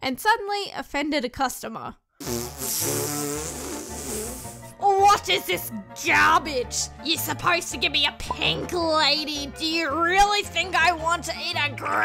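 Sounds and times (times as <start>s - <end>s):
background music: 2.2s - 12.0s
long raspy hiss: 2.3s - 4.6s.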